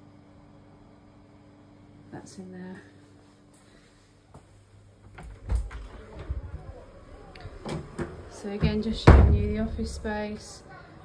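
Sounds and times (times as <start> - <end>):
door shutting thump: 7.6 - 10.0.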